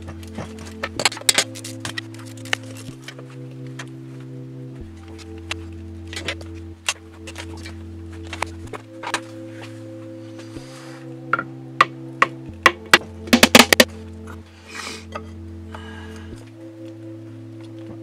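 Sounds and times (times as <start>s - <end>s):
background music of held chords: 0.0s - 18.0s.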